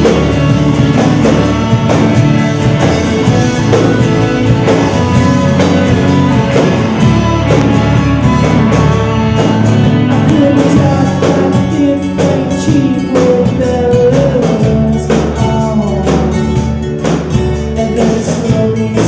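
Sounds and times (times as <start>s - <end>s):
live band playing country song: 0.0s - 19.0s.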